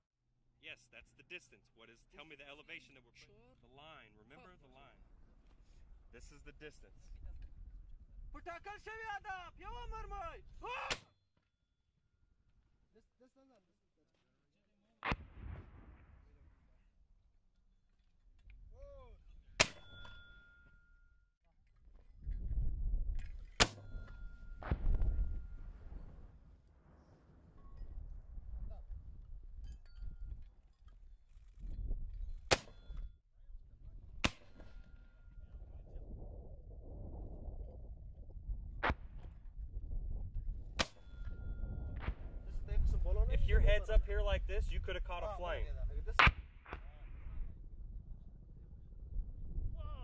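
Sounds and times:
low wind rumble: 5.0 - 10.6, 22.0 - 50.0
mortar firing: 15.0 - 16.4, 19.6 - 20.2, 23.5 - 25.1, 32.5 - 32.9, 34.2 - 34.8, 40.8 - 41.2, 46.1 - 47.1
distant shell explosions: 15.0 - 16.5, 23.6 - 26.3
metallic ringing from tube: 19.7 - 21.3, 40.9 - 42.7.

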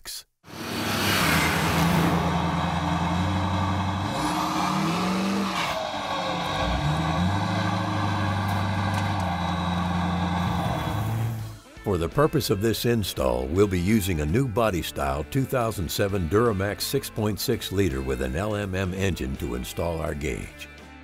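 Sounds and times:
exhaust and road noise: 0.4 - 11.6
pickup truck engine running hard: 0.5 - 11.5.

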